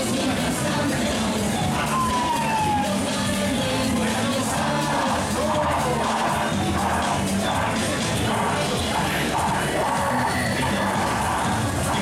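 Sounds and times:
fairground ride music: 0.0s - 12.0s.

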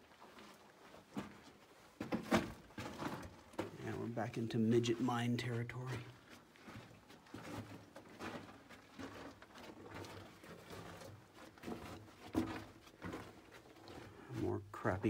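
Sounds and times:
person crawling over dirt and rock: 0.0s - 15.0s.

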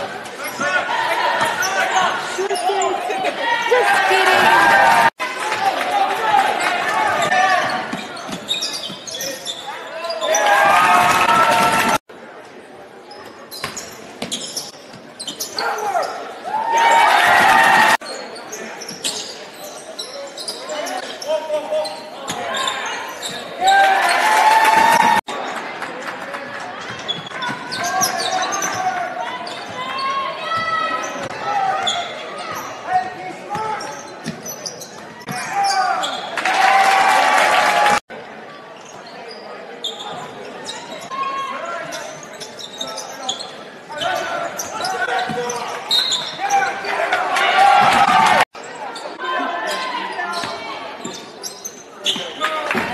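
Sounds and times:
spectators shouting: 0.5s - 7.7s, 10.2s - 12.0s, 15.7s - 18.0s, 46.4s - 48.5s.

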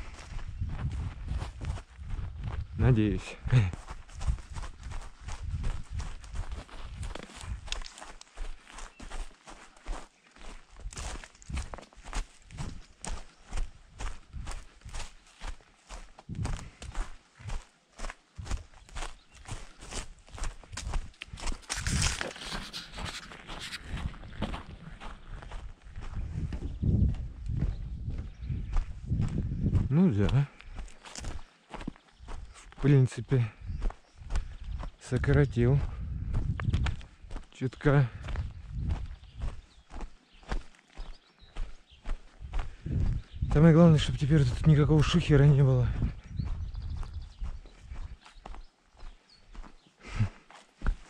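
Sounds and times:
footsteps crunching on gravel: 0.0s - 51.0s.

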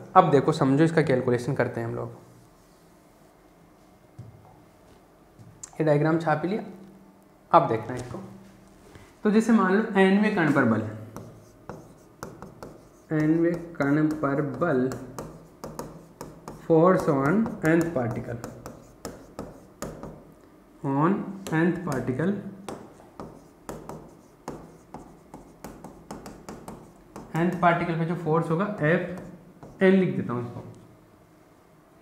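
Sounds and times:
pen scratching on screen: 11.1s - 20.2s, 22.7s - 27.7s, 29.0s - 29.9s.

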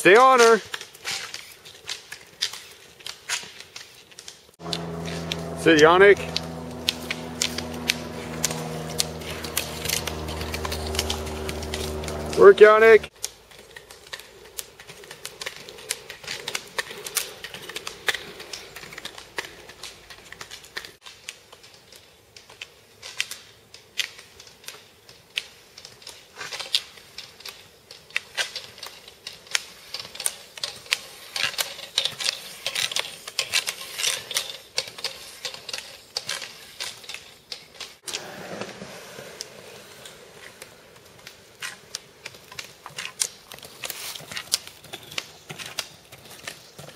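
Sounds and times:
roller skis clattering: 0.1s - 46.9s
ski-pole tips striking pavement: 0.2s - 38.0s.

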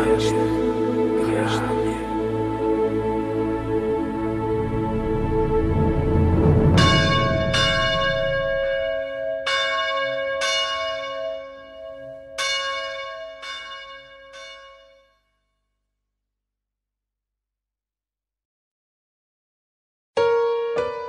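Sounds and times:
song: 0.0s - 9.5s
church bells ringing: 6.7s - 15.1s.

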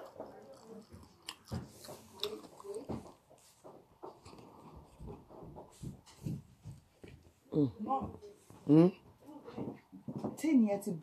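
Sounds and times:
person chewing food: 0.0s - 5.6s.

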